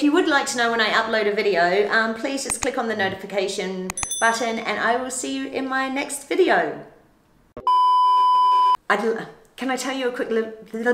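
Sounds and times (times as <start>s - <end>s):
steady electronic beep: 3.9s - 4.3s, 7.6s - 8.8s.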